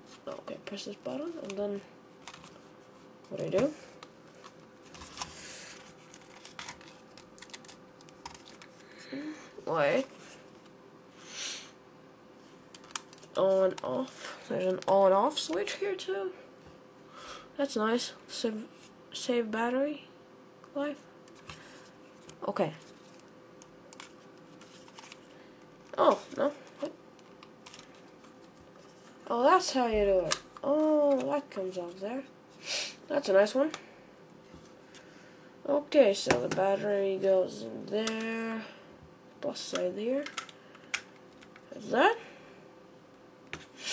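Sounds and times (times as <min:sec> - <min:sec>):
plastic mouse clicks and handling: 0:23.9 - 0:24.2, 0:40.2 - 0:41.6.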